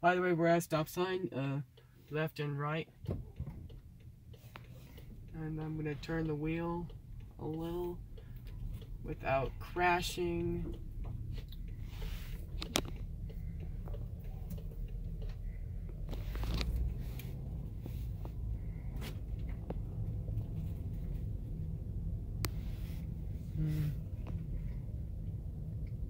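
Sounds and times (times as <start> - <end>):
car engine and tyres rumble: 0.0 - 26.0.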